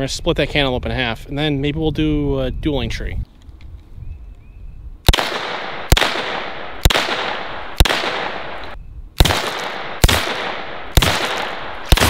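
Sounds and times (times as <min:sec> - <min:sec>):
gunshots with echoing tail: 0:05.1 - 0:12.0.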